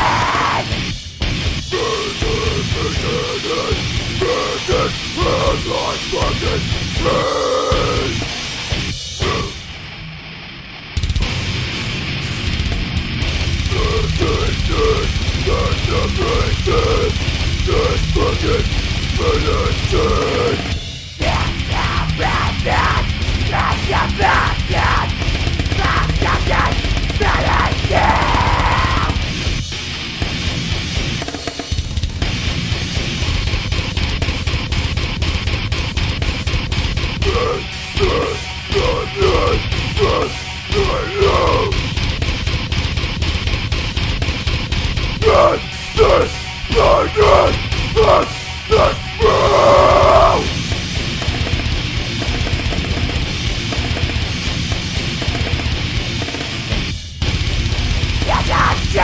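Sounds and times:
harsh vocals: 0:00.0 - 0:00.9, 0:01.6 - 0:09.8, 0:13.6 - 0:29.4, 0:37.2 - 0:42.1, 0:45.2 - 0:50.6, 0:58.2 - 0:59.0
heavy metal backing track: 0:00.0 - 0:59.0
heavy metal drums and guitar: 0:00.0 - 0:59.0.

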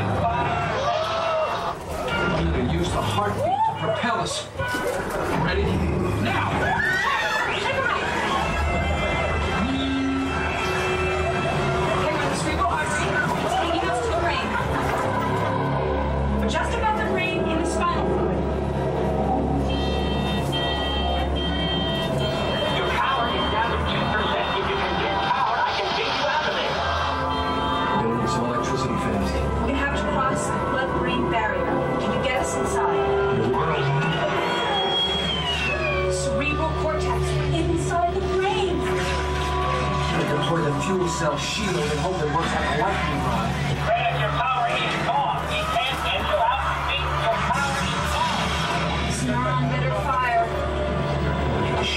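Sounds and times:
indistinct voices: 0:00.0 - 0:51.9
soundtrack music: 0:00.0 - 0:51.9.

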